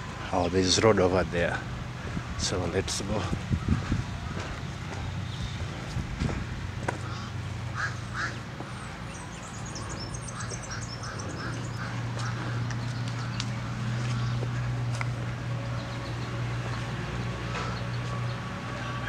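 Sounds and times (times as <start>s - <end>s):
small birds twittering: 2.0s - 19.0s
poultry calling: 6.9s - 14.9s.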